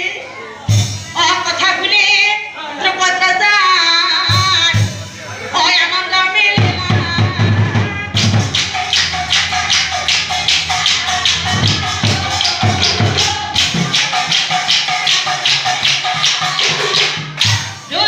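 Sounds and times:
deep drum strokes: 0:06.8 - 0:17.0
sharp percussion strokes: 0:07.7 - 0:18.0.

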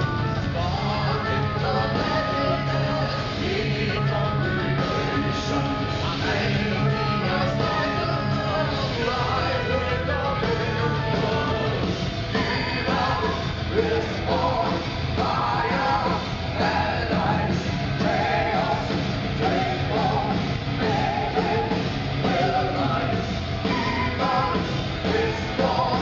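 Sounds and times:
metal band playing live: 0:00.0 - 0:26.0
singers singing with vibrato: 0:00.0 - 0:26.0.

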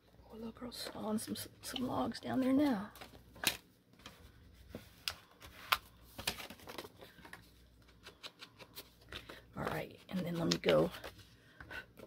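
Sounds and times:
paper rustling: 0:03.0 - 0:11.3.

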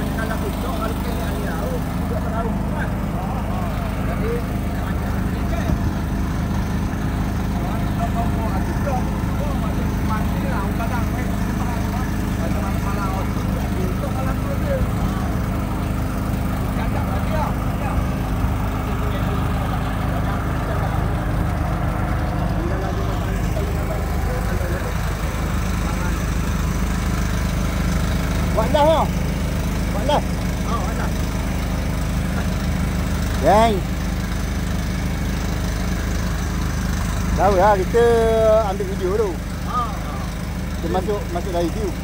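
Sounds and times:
small engine humming: 0:00.0 - 0:42.0.

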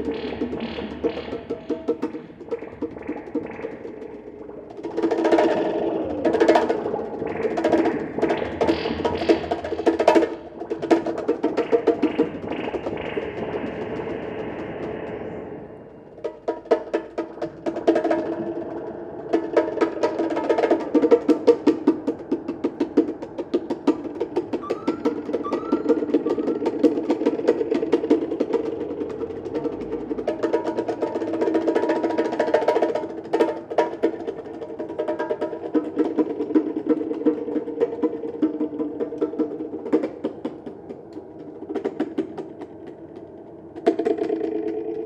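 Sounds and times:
percussion music: 0:00.0 - 0:15.2, 0:16.2 - 0:44.9
short rising chirps: 0:24.6 - 0:26.9.

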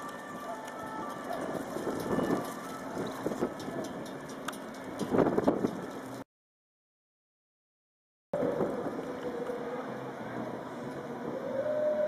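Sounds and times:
wind buffeting microphone: 0:00.0 - 0:06.2, 0:08.4 - 0:09.7
steady outdoor hiss: 0:08.4 - 0:12.0.

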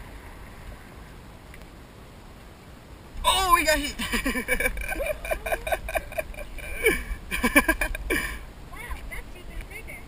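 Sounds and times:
steady low rumble: 0:00.0 - 0:10.0
person giggling: 0:03.9 - 0:08.4.

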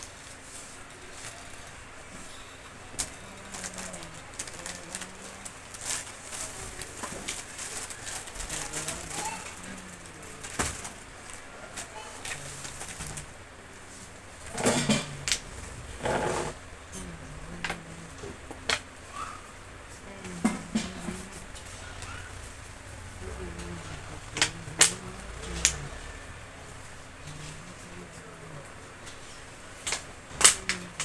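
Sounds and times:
pigeon cooing: 0:01.3 - 0:05.7, 0:07.8 - 0:13.7, 0:14.3 - 0:31.0.

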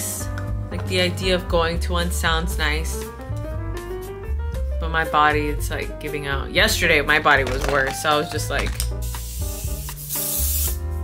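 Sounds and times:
background music: 0:00.0 - 0:11.0
spray can hissing: 0:07.8 - 0:11.0.

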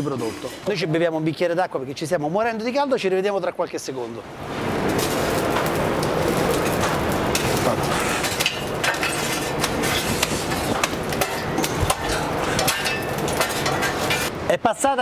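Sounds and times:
fire rushing: 0:00.0 - 0:14.6
charcoal crackling and popping: 0:03.7 - 0:14.4
metal tools clinking on coals: 0:04.9 - 0:14.3.

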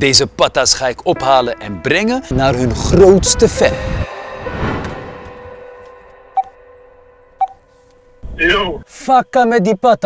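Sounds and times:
background music: 0:00.0 - 0:09.5
smartphone short beeps: 0:07.4 - 0:07.6.

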